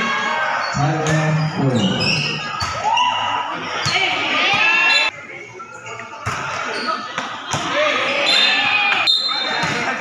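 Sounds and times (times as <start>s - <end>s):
people shouting and talking: 0.0s - 10.0s.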